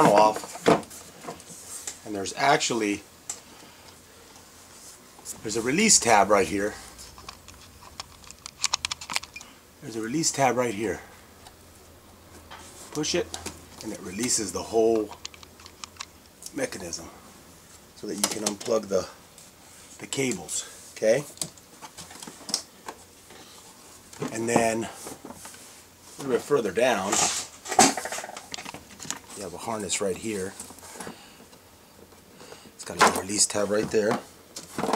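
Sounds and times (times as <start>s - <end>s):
handling clicks and taps: 7.2s - 9.4s, 14.9s - 16.1s.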